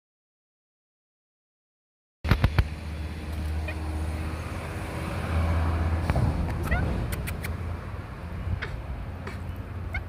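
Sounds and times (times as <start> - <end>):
distant road traffic rumble: 2.3 - 10.0.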